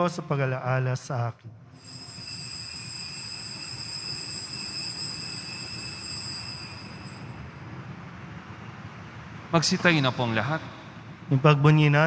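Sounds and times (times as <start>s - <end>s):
altar bells ringing: 1.8s - 7.4s.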